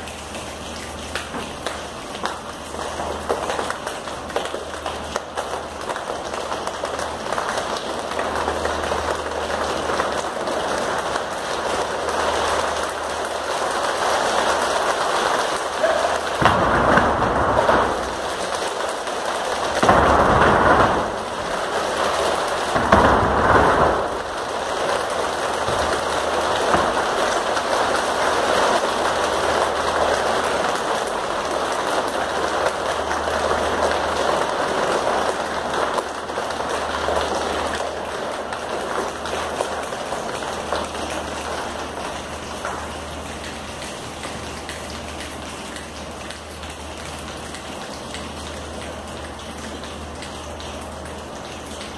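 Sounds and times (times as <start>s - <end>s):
dense rain patter: 0.0s - 51.9s.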